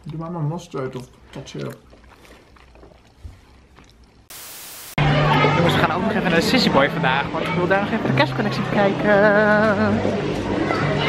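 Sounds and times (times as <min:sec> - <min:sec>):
faint chewing of food: 0:00.0 - 0:04.3.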